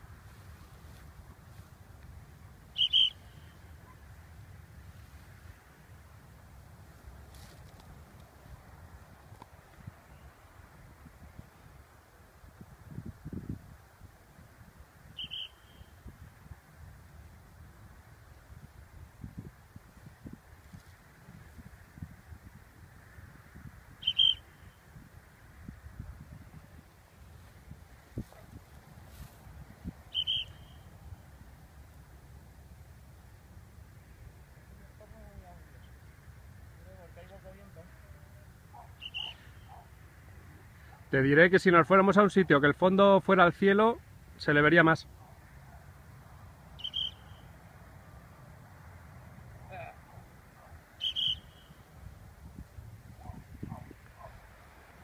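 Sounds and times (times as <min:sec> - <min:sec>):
low rumble of wind: 0:00.0 - 0:55.0
high whistles: 0:02.7 - 0:03.7, 0:15.2 - 0:16.0, 0:24.0 - 0:24.7, 0:30.1 - 0:30.9, 0:39.0 - 0:39.8, 0:46.8 - 0:47.6, 0:51.0 - 0:51.9
bird chirps: 0:02.7 - 0:04.0, 0:15.2 - 0:16.0, 0:24.0 - 0:24.8, 0:30.1 - 0:31.0, 0:38.8 - 0:39.9, 0:46.8 - 0:47.6, 0:51.0 - 0:51.8.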